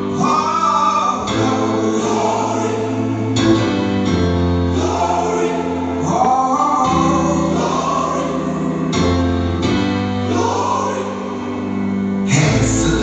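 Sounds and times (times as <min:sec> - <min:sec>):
bass: 0:00.0 - 0:13.0
gospel choir singing: 0:00.0 - 0:13.0
keyboard accompaniment: 0:00.0 - 0:13.0.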